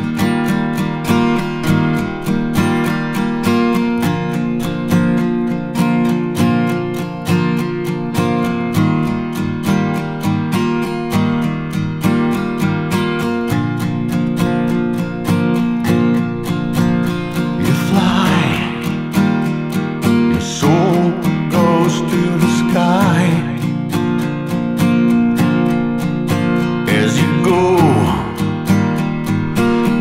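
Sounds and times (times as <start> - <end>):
acoustic guitar strummed: 0.0 - 30.0.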